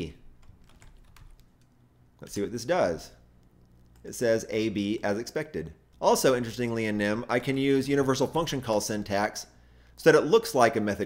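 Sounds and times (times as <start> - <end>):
keyboard typing: 0.4 - 2.4, 3.4 - 4.1.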